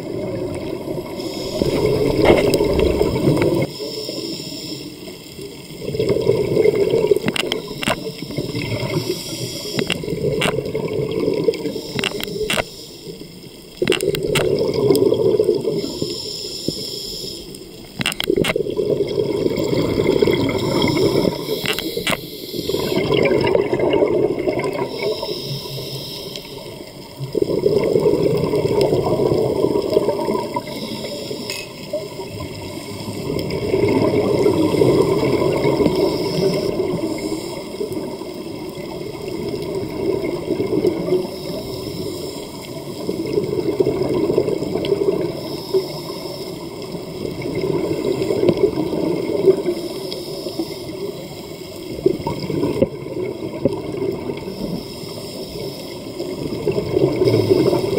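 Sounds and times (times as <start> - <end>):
regulator bubbles gurgling: 0.0 - 16.5, 17.5 - 57.9
diver inhaling underwater: 1.0 - 5.2, 6.2 - 10.5, 14.7 - 17.9, 19.1 - 26.9, 34.7 - 38.1, 54.4 - 56.1
sharp clicks: 7.2 - 8.2, 9.7 - 10.6, 11.9 - 12.8, 13.8 - 14.6, 17.9 - 18.6, 21.5 - 22.3.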